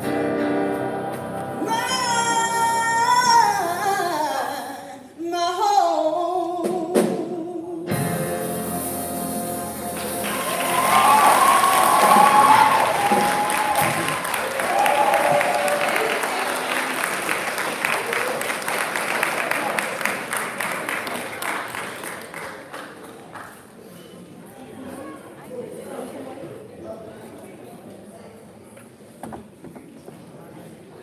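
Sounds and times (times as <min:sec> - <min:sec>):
audience applauding and cheering: 0:09.9 - 0:23.5
people whooping: 0:10.2 - 0:17.0.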